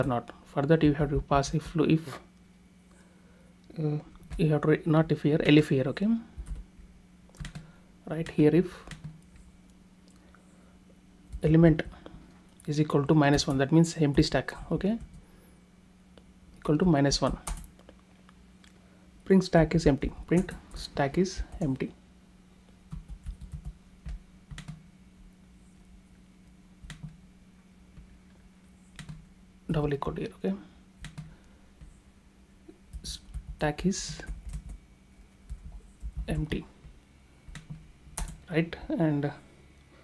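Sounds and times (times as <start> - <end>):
faint low hum: 0.0 - 40.0
computer keyboard keystrokes: 7.3 - 7.7, 8.9 - 9.4, 17.2 - 17.8, 22.9 - 24.8, 26.8 - 27.2, 29.0 - 29.2, 31.0 - 31.9, 32.9 - 34.8, 35.4 - 38.4.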